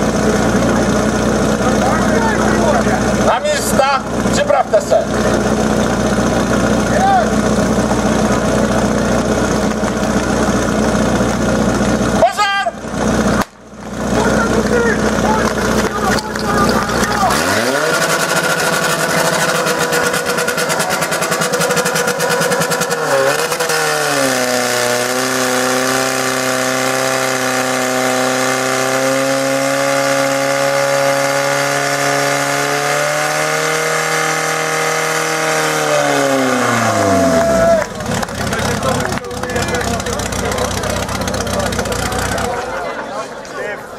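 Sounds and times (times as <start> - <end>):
pump engine running: 0.0 - 43.0.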